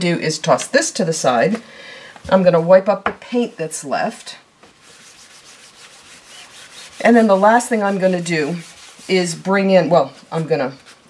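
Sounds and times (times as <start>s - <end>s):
paper towel rubbing surface: 4.7s - 11.0s.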